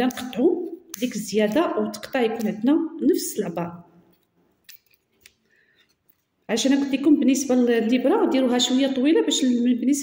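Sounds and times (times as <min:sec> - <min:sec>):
small scissors snipping: 0:00.0 - 0:02.7.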